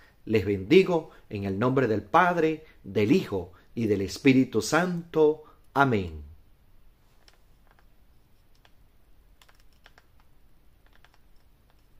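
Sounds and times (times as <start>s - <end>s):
faint irregular clicks: 7.1s - 11.9s.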